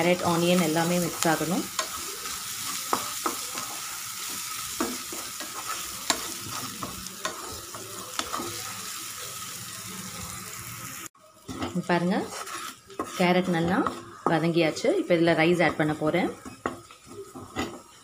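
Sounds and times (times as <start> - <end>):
spatula scraping pan: 0.0 - 9.5, 11.4 - 18.0
vegetables sizzling in oil: 0.0 - 18.0.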